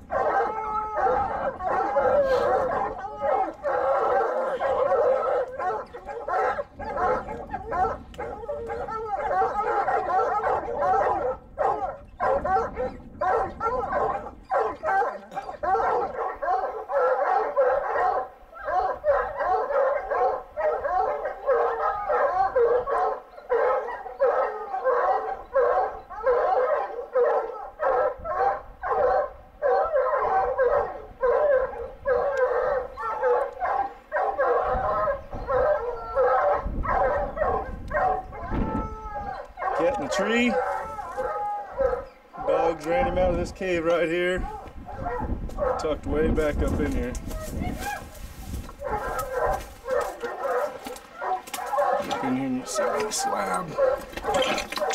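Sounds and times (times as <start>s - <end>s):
hounds baying and barking: 0.0s - 54.9s.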